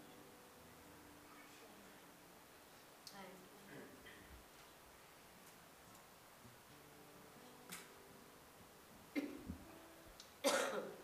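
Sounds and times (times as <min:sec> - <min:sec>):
person coughing: 0:10.4 - 0:11.0.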